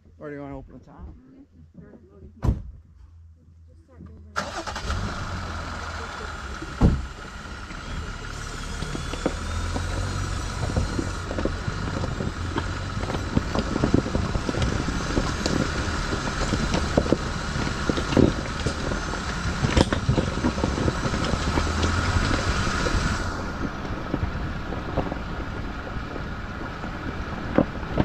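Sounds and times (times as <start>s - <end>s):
truck engine running: 3.9s - 28.0s
stones crackling under tyres: 4.5s - 28.0s.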